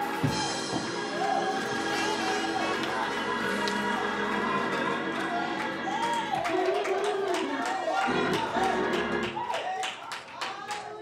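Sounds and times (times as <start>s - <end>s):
music: 0.0s - 9.6s
congregation clapping rhythmically: 0.0s - 11.0s.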